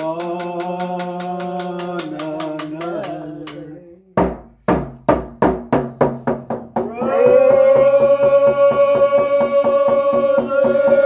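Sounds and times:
voices singing: 0.0 - 4.2, 6.8 - 11.0
frame drum beats: 4.2 - 11.0.

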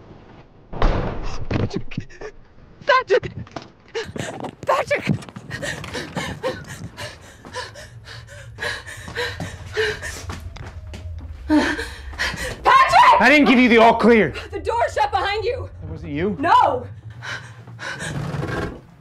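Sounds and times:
knocks and rustles of people moving: 1.5 - 19.0
low steady hum: 2.0 - 19.0
person shouting: 12.6 - 14.0.

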